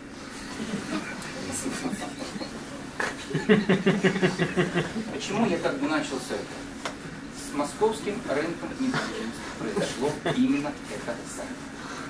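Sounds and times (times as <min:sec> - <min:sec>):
audience laughing: 0:00.5 - 0:05.2.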